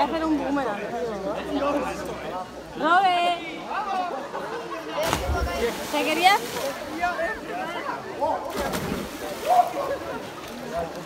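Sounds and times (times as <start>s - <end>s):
water splash: 5.0s - 7.1s, 8.5s - 9.9s
water sloshing: 5.0s - 7.5s, 8.4s - 10.8s.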